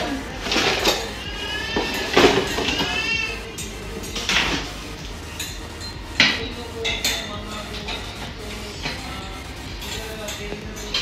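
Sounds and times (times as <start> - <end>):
high wavering tone: 0.0 - 11.0.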